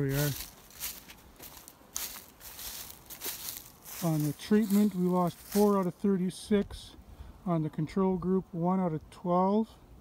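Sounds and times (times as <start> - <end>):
footsteps on dry leaves: 0.0 - 6.2.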